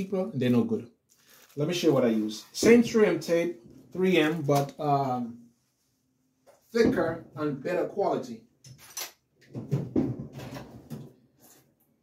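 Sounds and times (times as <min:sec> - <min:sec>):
rustling: 0:01.1 - 0:02.8
objects knocking on a workbench: 0:09.5 - 0:11.2.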